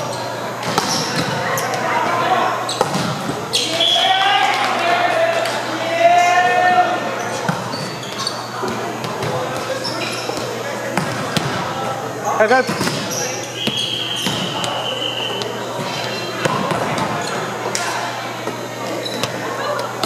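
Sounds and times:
voices calling out in a hall: 0.0s - 20.0s
volleyballs bouncing and being hit: 0.6s - 1.8s, 2.7s - 3.7s, 7.3s - 20.0s.

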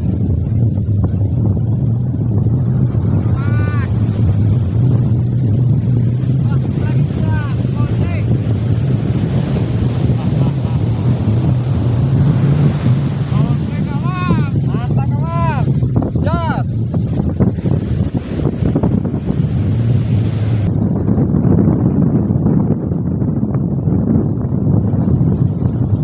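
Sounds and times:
surf breaking on beach: 0.0s - 22.1s
wind rumbling on microphone: 0.0s - 26.0s.

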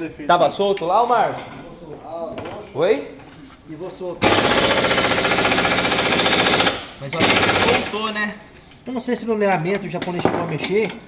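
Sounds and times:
pneumatic impact wrench rattling: 4.2s - 8.0s.

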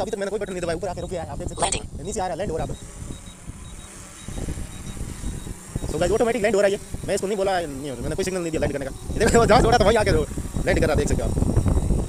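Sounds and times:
drone propellers buzzing: 0.0s - 12.0s
person speaking: 1.5s - 1.9s.

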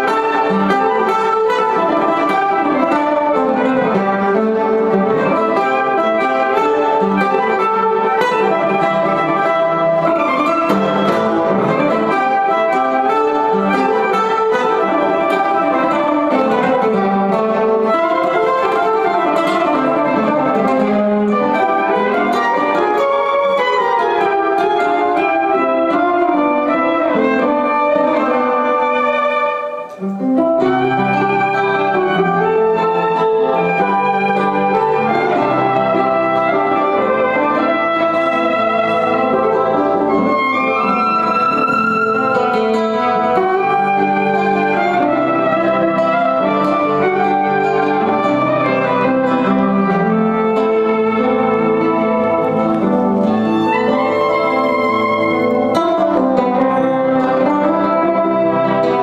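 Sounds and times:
strummed and picked guitar: 0.0s - 59.0s
violin playing melody: 0.0s - 59.0s.

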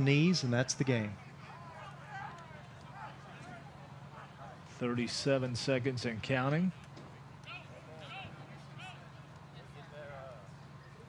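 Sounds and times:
distant high-pitched shouting: 1.2s - 4.7s, 7.4s - 9.2s.

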